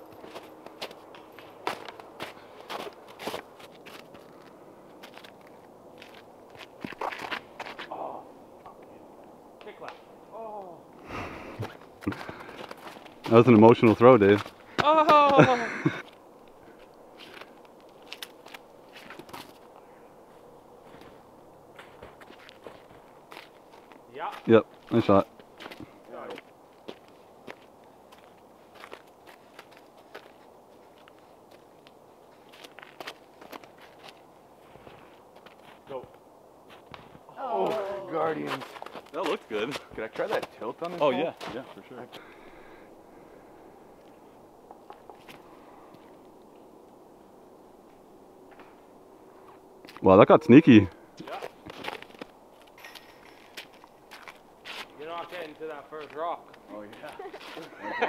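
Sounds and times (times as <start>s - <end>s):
footsteps in wet snow: 0.0s - 7.9s, 11.6s - 14.8s, 20.3s - 36.0s, 36.6s - 40.6s, 51.2s - 58.0s.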